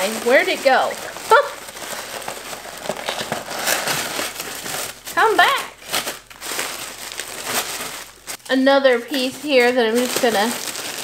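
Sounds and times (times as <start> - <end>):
packing paper crinkling: 0.0 - 11.0.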